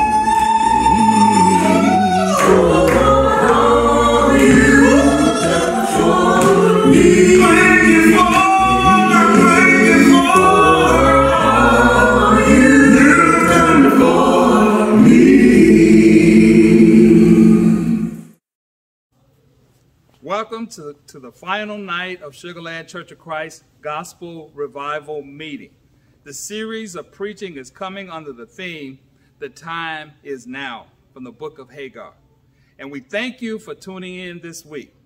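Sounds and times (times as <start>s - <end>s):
choir singing a cappella: 0.0s - 18.4s.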